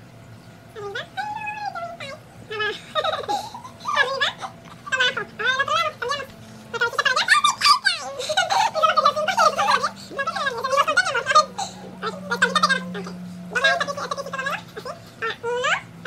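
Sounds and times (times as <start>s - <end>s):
boy laughing and giggling: 2.5s - 15.7s.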